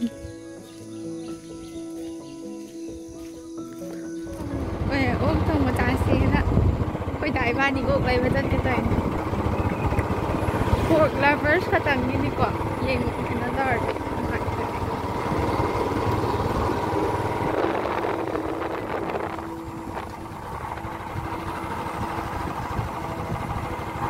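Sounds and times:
motorbike engine rumble: 0.0s - 24.0s
wind rushing over microphone: 4.3s - 24.0s.

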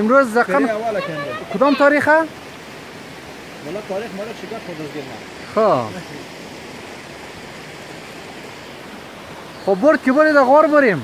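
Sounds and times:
steady rushing hiss: 0.0s - 11.0s.

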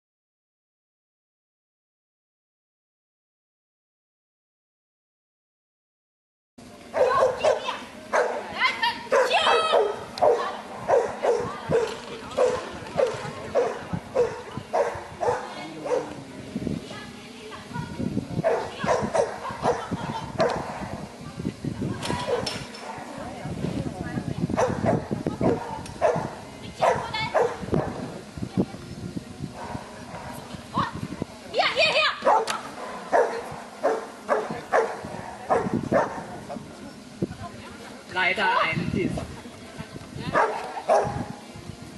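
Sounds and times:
dog barking: 6.9s - 8.5s, 9.1s - 16.2s, 18.4s - 21.0s, 22.2s - 23.1s, 24.6s - 28.0s, 32.2s - 36.3s, 40.3s - 41.3s.

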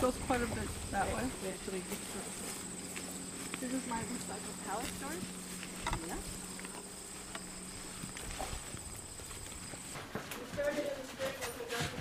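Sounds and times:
low steady hum: 0.0s - 11.2s
insects chirring: 0.0s - 11.7s.

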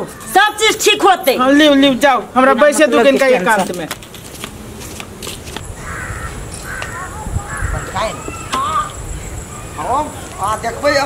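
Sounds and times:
bird calling: 5.6s - 10.6s.

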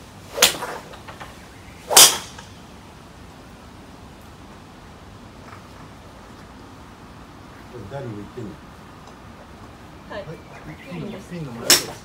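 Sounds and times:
rain hiss: 0.0s - 12.0s
golf club striking ball: 1.9s - 2.6s, 11.6s - 12.0s.

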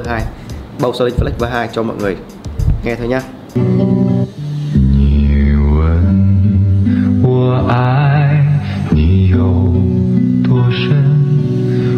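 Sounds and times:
steady bass notes: 0.0s - 11.9s
sung melody with vibrato: 3.3s - 11.9s.

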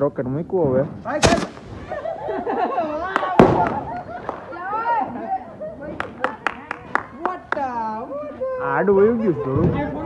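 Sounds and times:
firework bang: 1.1s - 2.0s, 3.3s - 4.5s.

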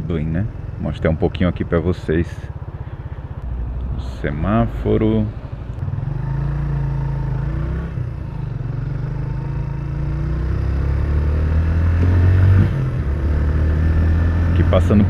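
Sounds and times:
motorcycle engine accelerating: 0.0s - 15.0s.

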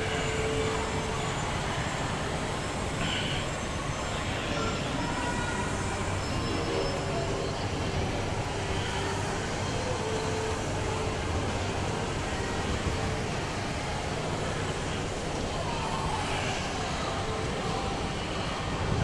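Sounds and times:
crowd noise: 0.0s - 19.0s.

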